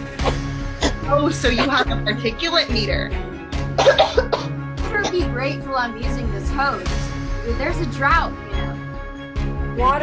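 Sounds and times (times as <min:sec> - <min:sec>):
music with low beat: 0:00.0 - 0:10.0
person coughing: 0:00.2 - 0:02.1, 0:03.8 - 0:05.2.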